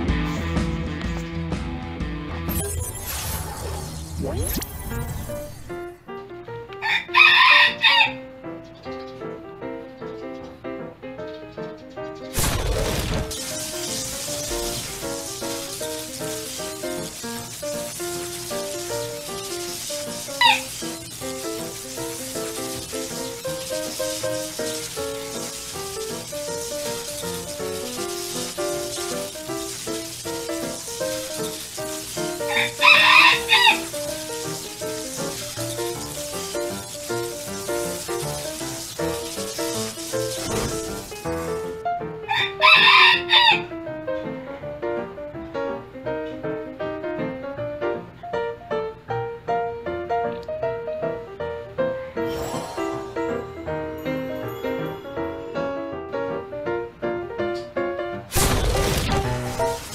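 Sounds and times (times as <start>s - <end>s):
rooster crowing: 6.8s - 8.2s, 32.5s - 33.9s, 42.3s - 43.7s
background music: 12.3s - 48.2s, 51.1s - 57.3s.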